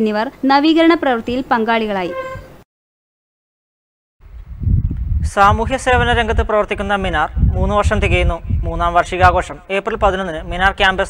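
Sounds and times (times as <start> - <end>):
woman's voice-over narration: 0.0 - 2.5.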